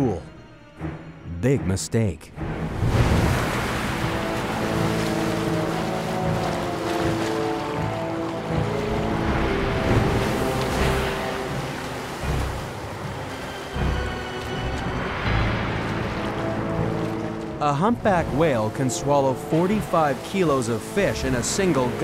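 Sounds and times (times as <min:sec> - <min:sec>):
background music with held notes: 0:00.0 - 0:22.0
sea water rushing and splashing: 0:02.4 - 0:22.0.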